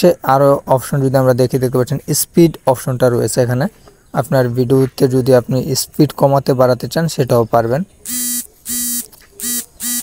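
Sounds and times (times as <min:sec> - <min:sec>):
short buzzy notification beeps: 0:08.1 - 0:10.0.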